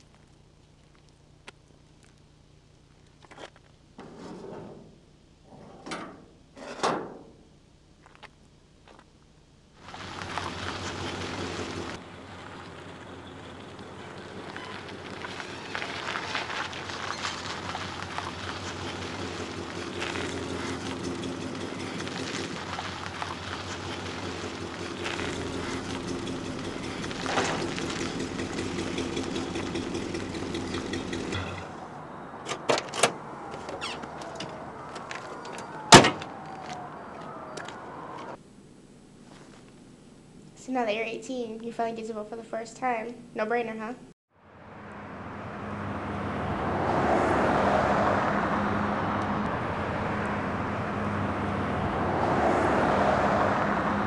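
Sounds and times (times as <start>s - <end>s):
dumpster lid dragging: 4.0s - 7.3s, 23.6s - 31.8s
car engine idling: 9.8s - 32.0s.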